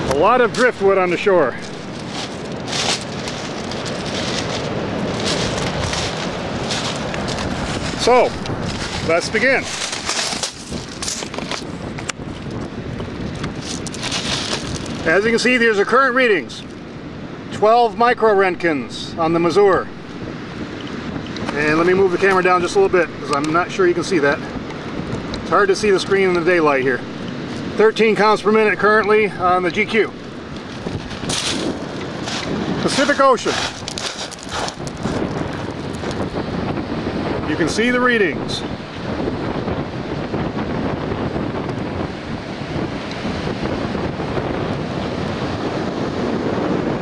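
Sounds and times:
man speaking: 0.0 - 1.8, 7.9 - 8.4, 9.0 - 9.8, 15.0 - 16.6, 17.5 - 19.9, 21.5 - 24.6, 25.5 - 27.1, 27.8 - 30.2, 32.8 - 33.8, 37.4 - 38.7
ocean surf: 0.0 - 47.0
wind on microphone: 0.0 - 47.0.

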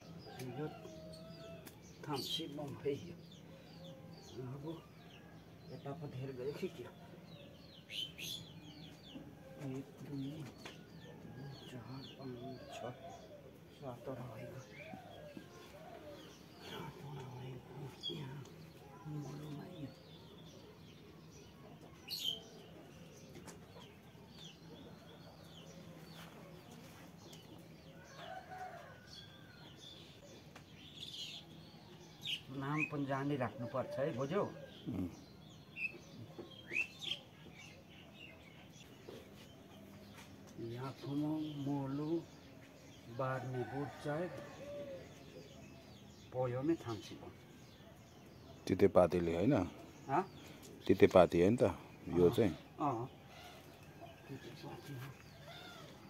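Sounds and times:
small birds chirping: 0.0 - 56.0
low voice or dove cooing: 12.4 - 20.0, 33.6 - 35.5.

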